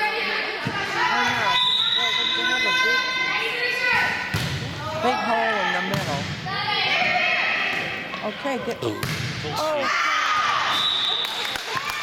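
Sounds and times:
volleyball smack: 0:04.3 - 0:04.7, 0:09.0 - 0:09.4.

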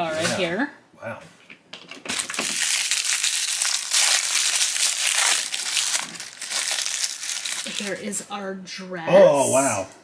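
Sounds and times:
wrapper crinkling: 0:01.9 - 0:08.2.

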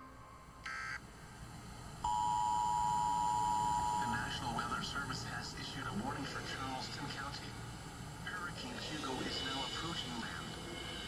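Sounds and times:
steady electronic beep: 0:02.0 - 0:04.4.

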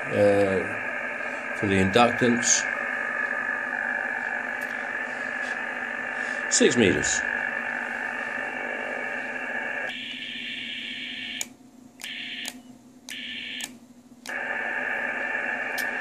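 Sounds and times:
radio receiver hiss: 0:00.0 - 0:09.9, 0:14.3 - 0:16.0.

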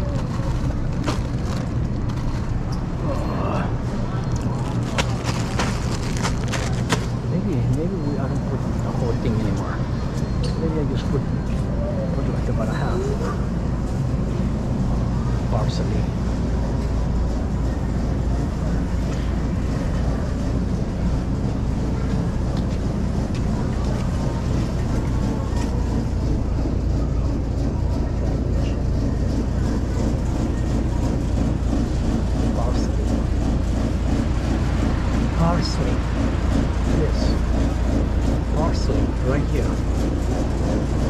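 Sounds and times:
faint distant voices: 0:00.0 - 0:41.0
supermarket background rumble: 0:00.0 - 0:41.0.

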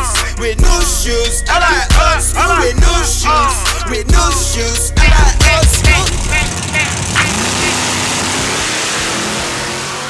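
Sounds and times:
car engine accelerating: 0:04.2 - 0:10.0
exhaust rush: 0:04.8 - 0:10.0.

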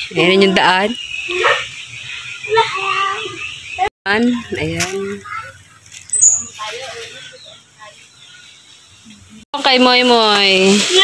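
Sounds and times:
children's voices: 0:00.2 - 0:08.3.

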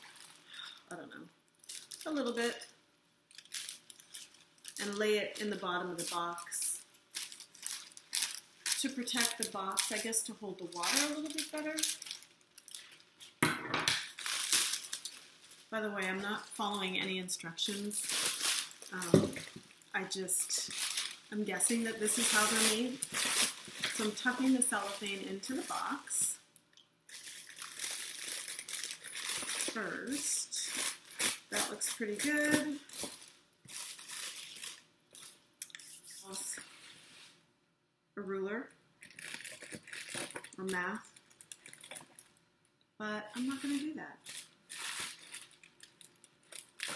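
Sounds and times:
cellophane crinkling: 0:01.5 - 0:02.7, 0:03.3 - 0:13.4, 0:14.0 - 0:26.4, 0:27.1 - 0:36.7, 0:39.0 - 0:42.4, 0:43.3 - 0:46.9.

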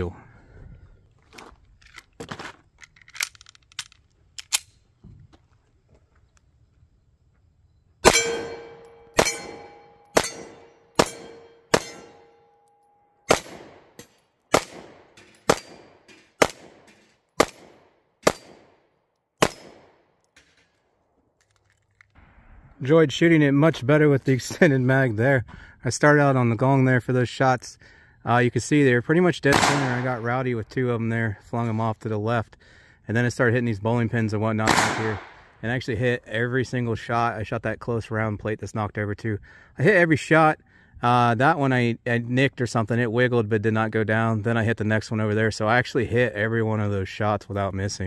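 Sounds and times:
pistol shots: 0:08.0 - 0:12.3, 0:13.3 - 0:20.6, 0:29.5 - 0:30.2, 0:34.6 - 0:35.5.

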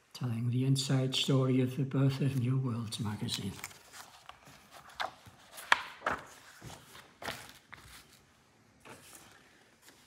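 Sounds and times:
magazine pages turning: 0:02.1 - 0:10.0.

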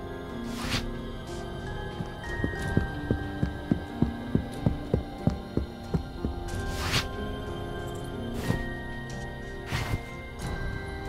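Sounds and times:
low droning music: 0:00.0 - 0:11.0.

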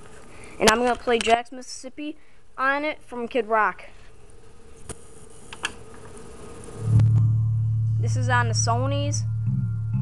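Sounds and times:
faint buzzing hum from stereo: 0:00.0 - 0:10.0
song with deep bass note: 0:06.8 - 0:10.0.

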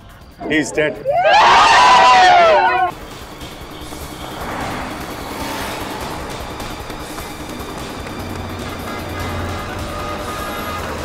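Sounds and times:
car driving past: 0:02.9 - 0:11.0.

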